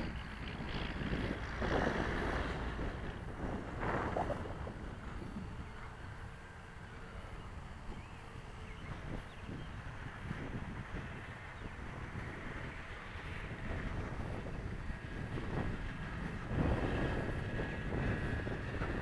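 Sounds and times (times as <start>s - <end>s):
model airplane motor whine: 0.0s - 19.0s
wind buffeting microphone: 0.0s - 19.0s.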